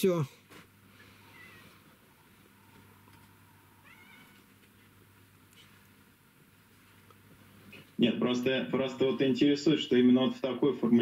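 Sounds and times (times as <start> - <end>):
faint low hum: 0.0 - 11.0
high-pitched squeaky cry: 3.8 - 4.4.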